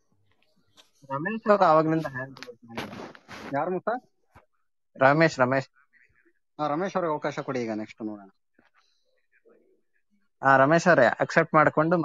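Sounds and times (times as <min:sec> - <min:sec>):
voices on an audio call: 0:00.0 - 0:12.0.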